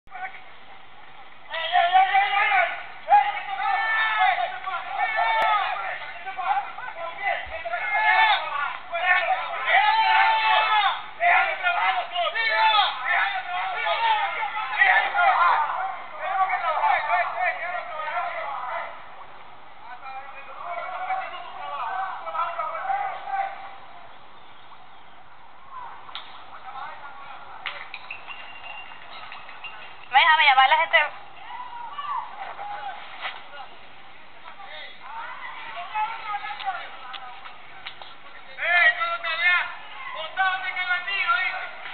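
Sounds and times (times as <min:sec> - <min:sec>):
people shouting and screaming: 0:01.5 - 0:19.2, 0:19.9 - 0:24.1, 0:30.1 - 0:33.7, 0:34.5 - 0:41.9.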